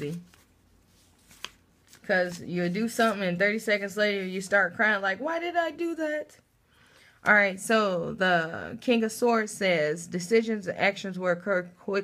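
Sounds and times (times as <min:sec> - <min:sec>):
woman speaking: 0:00.0 - 0:00.3, 0:02.0 - 0:06.4, 0:07.2 - 0:12.0.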